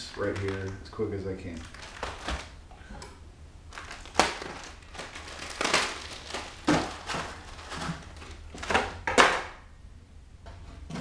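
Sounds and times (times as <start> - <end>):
cellophane crinkling and tearing: 0.0 - 2.6, 3.7 - 9.1.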